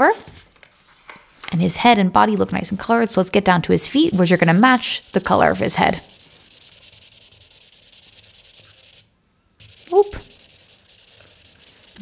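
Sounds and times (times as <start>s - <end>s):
marker scribbling on paper: 4.0s - 12.0s.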